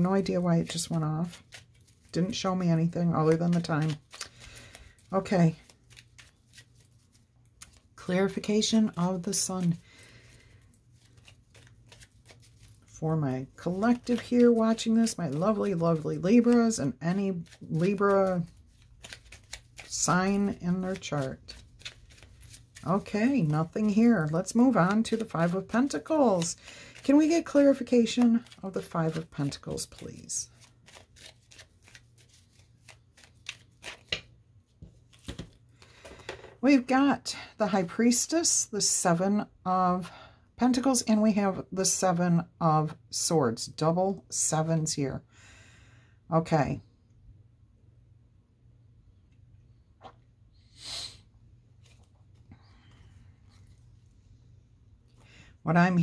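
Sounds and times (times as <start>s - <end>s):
cards being shuffled: 0.0s - 36.5s.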